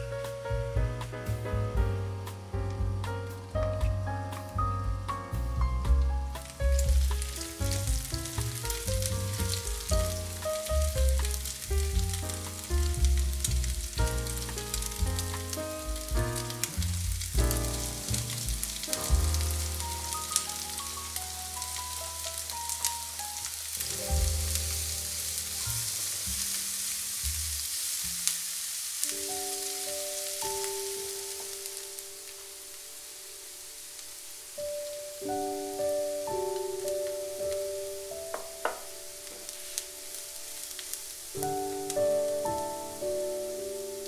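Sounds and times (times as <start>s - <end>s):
bacon sizzling in oil: 6.4s - 44.0s.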